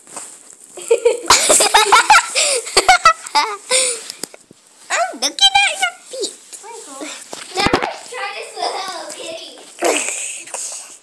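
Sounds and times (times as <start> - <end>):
children laughing: 0.8 - 4.1, 7.5 - 10.6.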